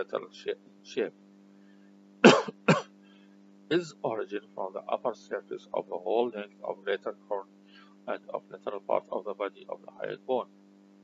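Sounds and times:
man coughing: 2.2s - 2.9s.

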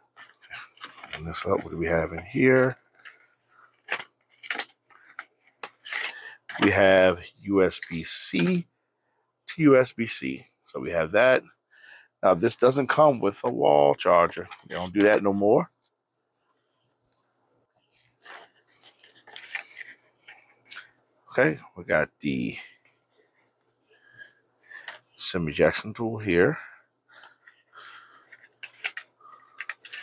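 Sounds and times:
cardboard sleeve rustling and scraping: 0.1s - 6.9s, 17.9s - 21.0s.

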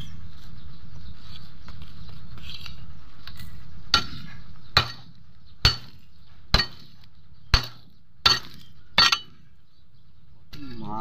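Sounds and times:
hoe blade clinking on stones: 7.6s - 9.4s.

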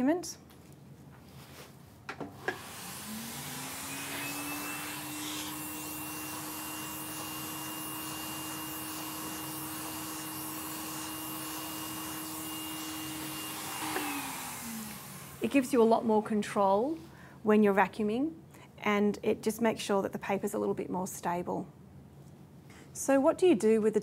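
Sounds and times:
vacuum cleaner motor whine: 2.3s - 16.1s.

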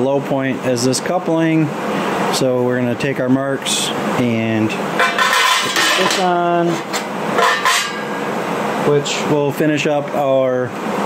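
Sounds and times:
metal plate scraping and clinking: 5.0s - 8.3s.

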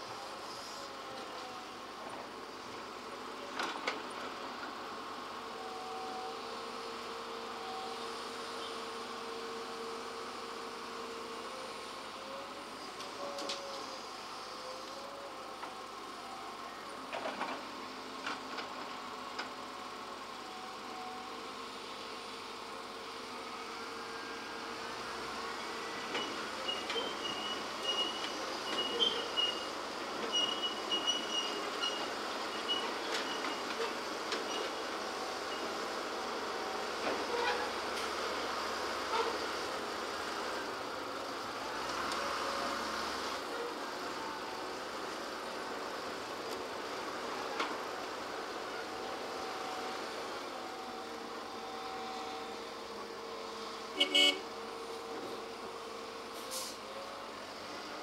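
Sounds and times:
dump trucks running: 0.0s - 58.0s
excavator running: 0.0s - 58.0s.

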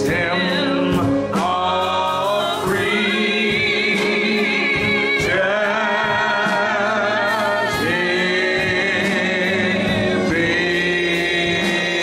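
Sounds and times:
gospel singers holding chords: 0.0s - 12.0s
keyboard accompaniment: 0.0s - 12.0s.

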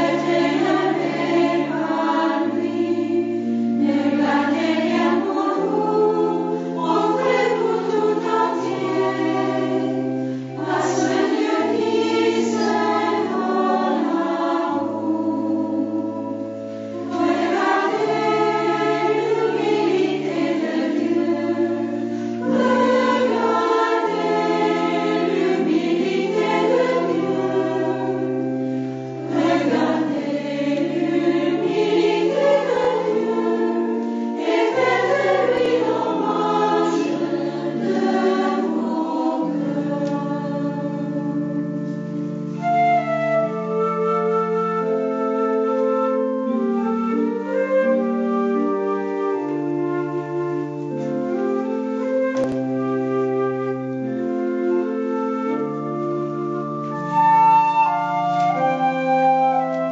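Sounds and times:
choir singing a hymn: 0.0s - 59.9s
held low accompaniment notes: 0.0s - 59.9s.

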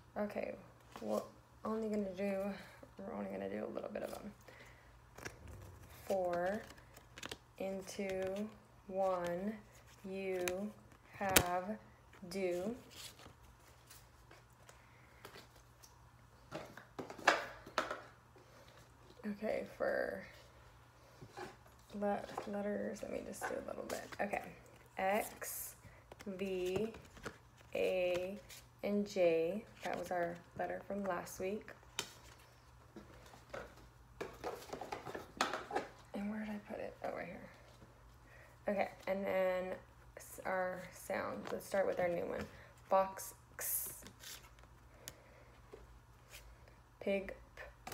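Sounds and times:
paper flashcards clicking: 6.4s - 7.4s
paper cards knocking and scuffing: 33.0s - 36.0s.

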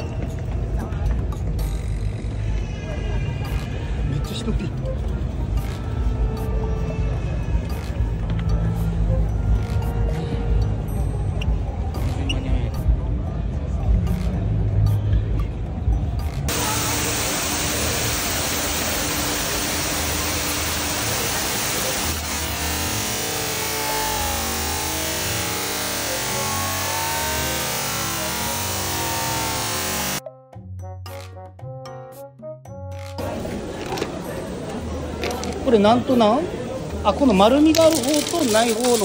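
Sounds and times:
mixed background noise: 0.0s - 30.2s, 33.0s - 39.0s
waterfall cascading into pool: 16.5s - 30.2s.

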